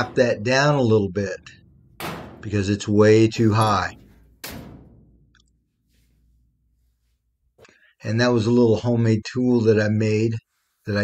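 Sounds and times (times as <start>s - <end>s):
hammer blow on sheet metal: 0.0s - 5.4s.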